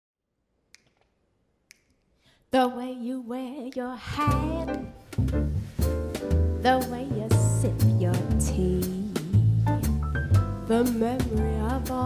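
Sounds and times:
faint finger snaps: 0.7 - 2.2.

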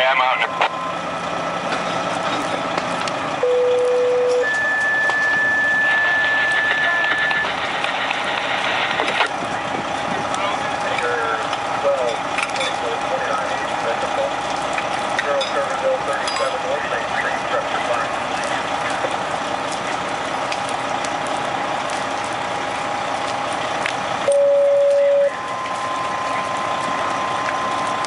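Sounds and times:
faint voices: 0.0 - 0.7, 5.8 - 14.4, 15.0 - 20.1, 24.8 - 28.0
two-tone radio page: 0.0 - 0.8, 5.8 - 9.3, 15.2 - 18.1
fire engines running: 0.0 - 28.0.

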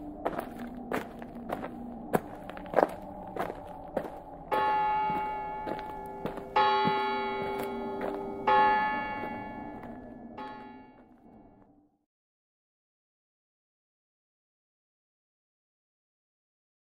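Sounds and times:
footsteps: 0.0 - 11.2
church bell tolling: 4.5 - 11.1.

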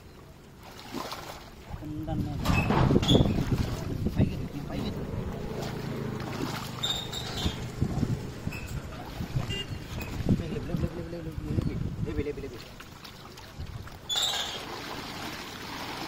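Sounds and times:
muddy water sloshing and splashing: 0.0 - 16.0
wind rumble on microphone: 1.8 - 12.5, 13.5 - 14.0.

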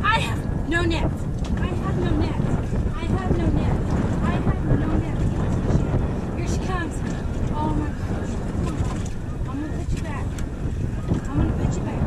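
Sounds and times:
woman's voice: 0.0 - 5.5, 6.4 - 8.9, 9.5 - 10.3, 11.3 - 12.0
wind buffeting microphone: 0.0 - 12.0.

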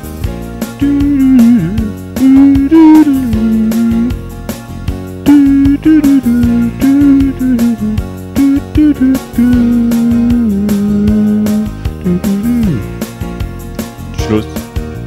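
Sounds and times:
guitar-like keyboard lead melody: 0.0 - 15.0
drum beat: 0.8 - 4.2, 5.3 - 13.6.

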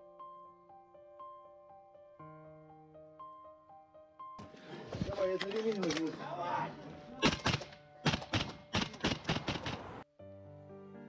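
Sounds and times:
person speaking: 4.8 - 7.4.

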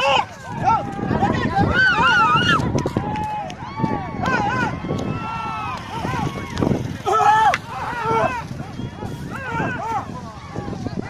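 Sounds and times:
people shouting: 0.0 - 11.0.

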